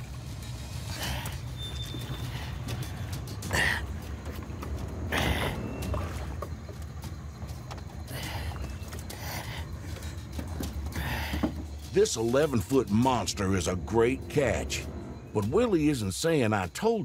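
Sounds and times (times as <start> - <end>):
water splashing and sloshing: 0.0 - 17.0.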